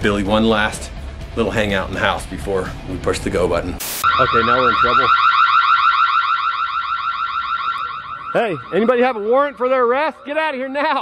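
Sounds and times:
warbling electronic siren: 4.0s - 10.7s.

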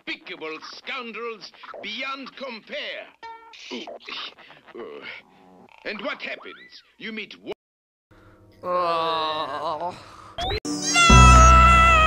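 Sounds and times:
high-pitched cartoon wail: 10.8s - 12.0s.

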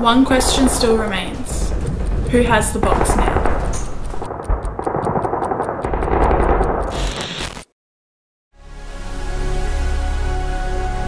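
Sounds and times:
low rumbling din: 0.0s - 7.3s
fast regular ticking: 0.0s - 7.6s.

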